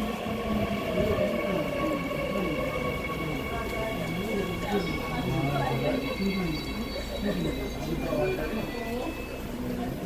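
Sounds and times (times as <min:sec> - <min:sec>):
recorded announcement over speakers: 0:00.0 - 0:10.0
train noise with electric whine: 0:00.0 - 0:10.0.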